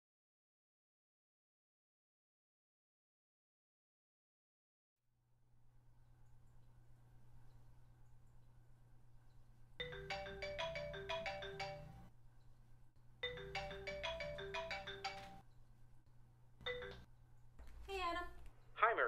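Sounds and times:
mobile phone ringtone: 9.8 - 12.1, 13.2 - 15.4, 16.7 - 17.1.

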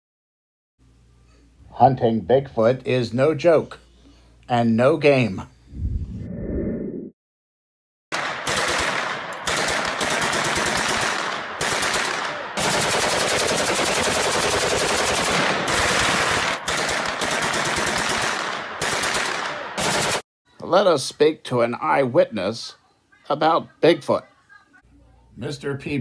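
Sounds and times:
rapid automatic gunfire: 8.2 - 20.2.

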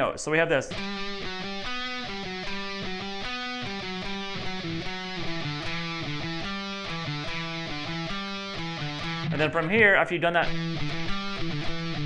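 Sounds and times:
electric guitar melody: 0.6 - 12.0.

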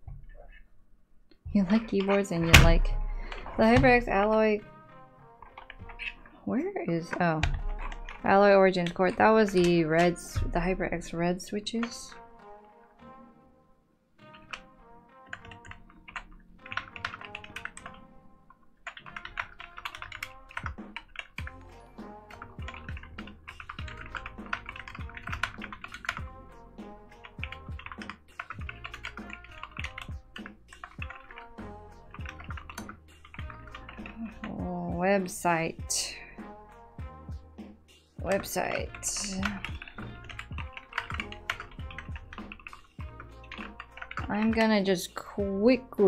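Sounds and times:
background music: 0.0 - 46.0
fast typing on mechanical keyboard: 7.4 - 10.3, 15.3 - 18.0, 18.8 - 21.6, 22.3 - 26.3, 27.2 - 34.7, 38.3 - 44.9.

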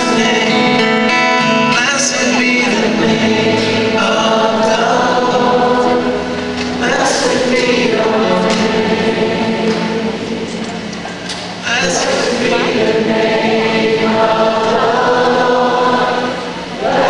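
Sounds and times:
crowd singing worship song: 0.0 - 17.0.

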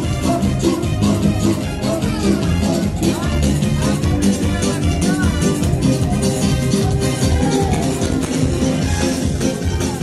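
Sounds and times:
live band dance music: 0.0 - 10.0.

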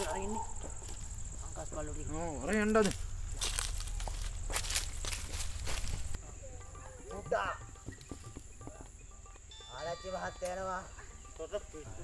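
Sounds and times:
footsteps on grass: 0.0 - 6.2
thin high-pitched tone: 9.1 - 11.9.

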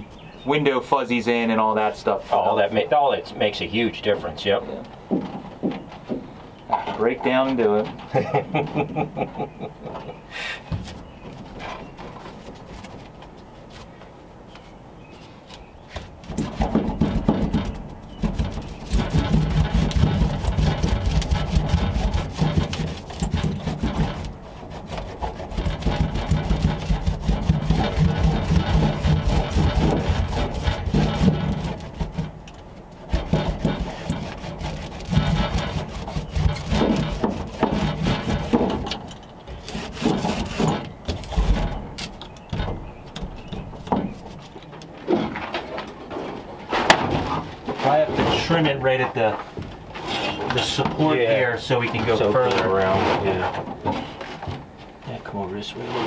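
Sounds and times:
hand roller rubbing on mat: 16.2 - 32.4, 33.0 - 38.7.

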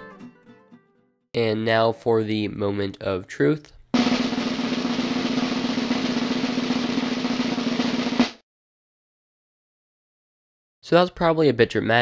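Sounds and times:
final drum hit: 4.0 - 8.4
snare drum roll: 4.0 - 8.4.

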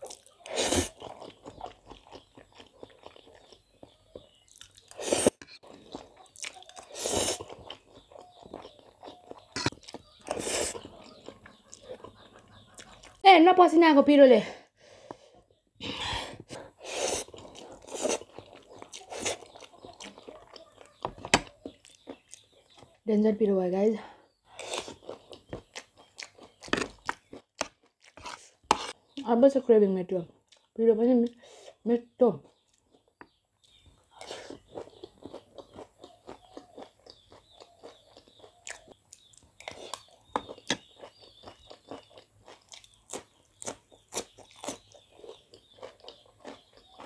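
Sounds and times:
person chewing crunchy snack: 0.0 - 13.2, 15.8 - 22.8, 24.5 - 29.0, 32.4 - 47.0.

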